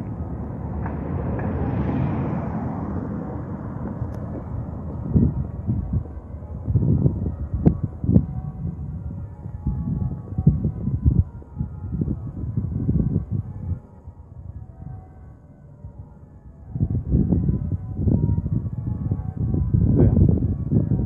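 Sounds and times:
low rumble on microphone: 0.0s - 21.0s.

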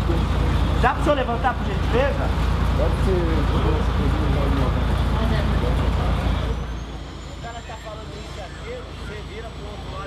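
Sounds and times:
heavy low traffic rumble: 0.0s - 10.0s.

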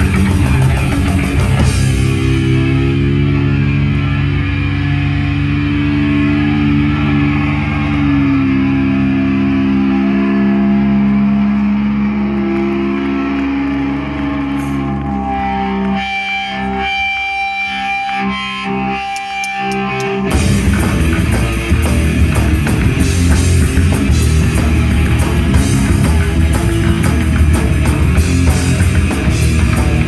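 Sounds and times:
bass guitar: 0.0s - 30.0s
distorted electric guitar chords: 0.0s - 30.0s
picked guitar notes: 0.0s - 30.0s.

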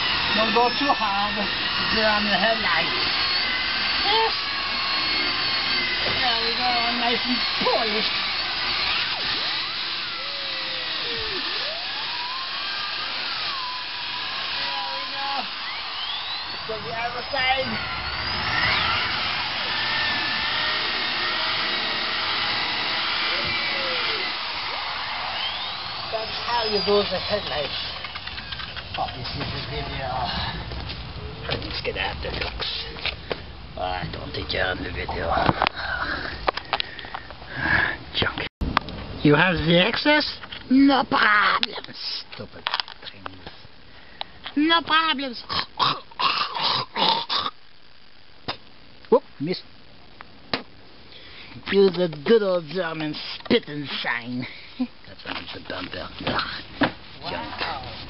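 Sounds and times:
electric polisher motor whine: 0.0s - 31.3s.

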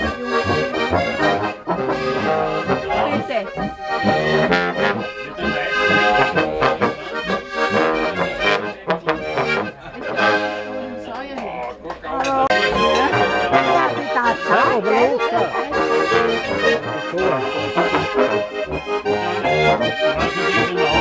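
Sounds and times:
trumpet: 0.0s - 11.0s, 12.5s - 21.0s
accordion: 0.0s - 21.0s.

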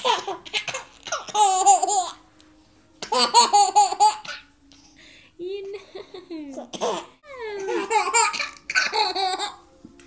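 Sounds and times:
baby laughing: 0.0s - 2.2s, 3.0s - 4.5s, 6.5s - 9.6s.

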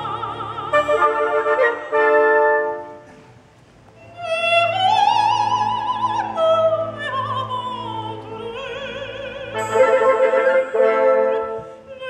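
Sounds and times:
operatic soprano singing: 0.0s - 3.0s, 4.0s - 12.0s
orchestra playing: 0.0s - 3.4s, 4.1s - 12.0s.

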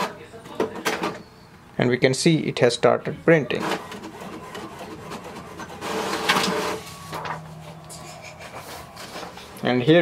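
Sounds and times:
printer whirring and rasping: 3.4s - 9.6s
steady low hum: 3.9s - 10.0s.

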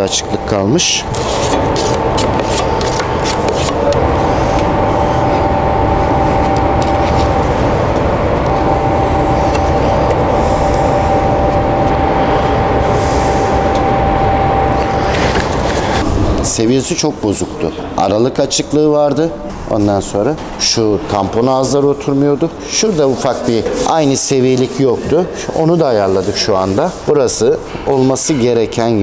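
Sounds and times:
machine rushing noise: 0.0s - 17.9s
constant machine whine: 0.0s - 28.3s.

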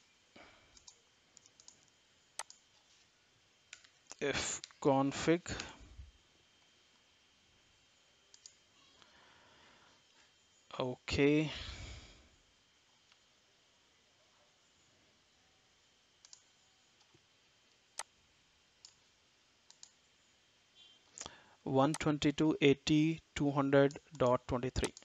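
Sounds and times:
computer mouse clicks: 0.8s - 2.6s, 8.3s - 8.6s, 16.2s - 17.1s, 19.6s - 20.0s, 24.8s - 25.0s.

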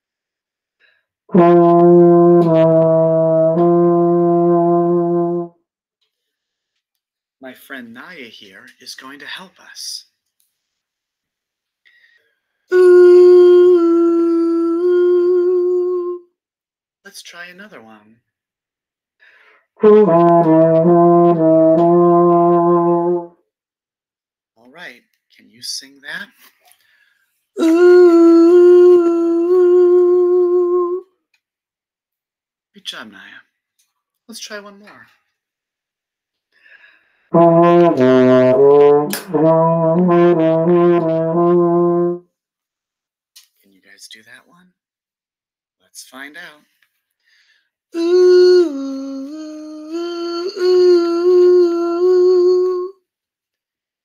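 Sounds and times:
baritone horn playing held notes: 1.3s - 5.5s, 12.7s - 16.2s, 19.8s - 23.3s, 27.6s - 31.0s, 37.3s - 42.2s
person singing sustained ooh: 12.7s - 16.2s, 27.6s - 31.0s, 48.0s - 53.0s.

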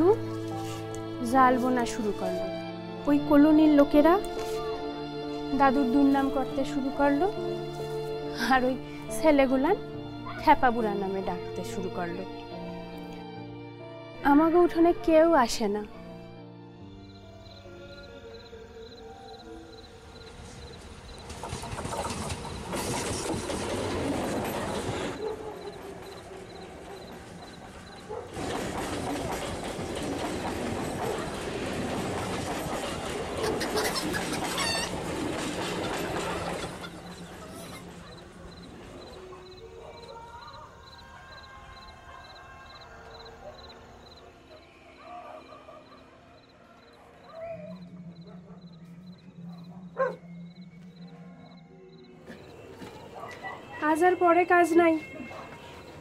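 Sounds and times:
train rumbling and clattering past: 17.1s - 44.8s, 45.9s - 56.0s.

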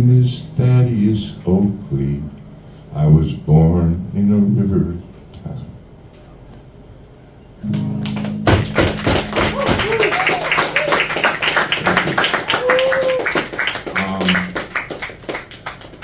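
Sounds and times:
acoustic guitar chord ringing: 7.6s - 9.6s
audience clapping: 7.7s - 16.0s.

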